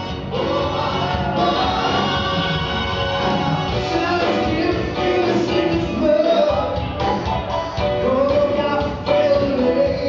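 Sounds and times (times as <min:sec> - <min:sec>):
live band playing with vocals: 0:00.0 - 0:10.0.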